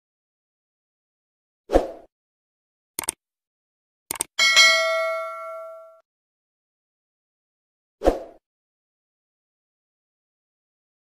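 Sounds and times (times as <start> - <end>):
mouse clicks: 3.0 - 3.2, 4.1 - 4.3
bright bell ding: 4.4 - 6.0.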